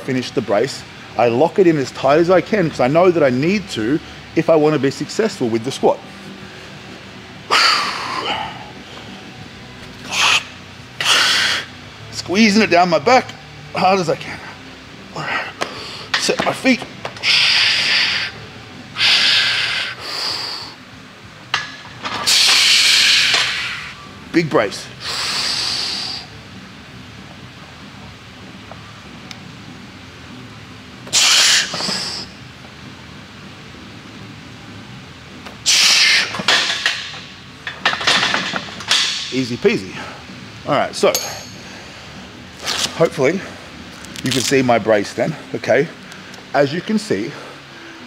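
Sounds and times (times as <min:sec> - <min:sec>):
man breathing forcefully: 0:19.0 - 0:20.8.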